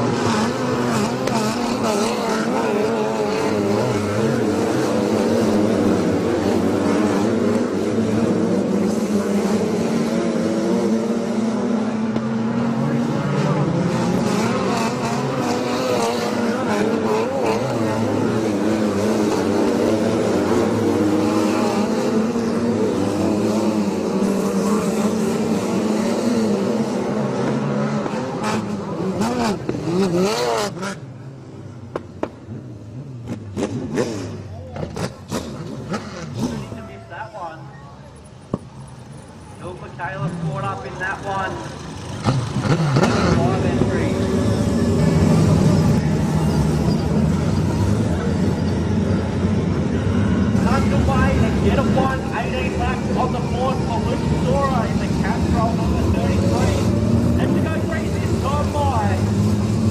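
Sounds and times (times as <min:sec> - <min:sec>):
sprint car engines racing: 0:00.0 - 0:59.9.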